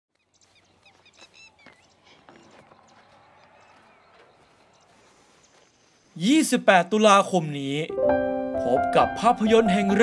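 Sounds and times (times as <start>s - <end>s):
small birds chirping: 0.1s - 6.6s.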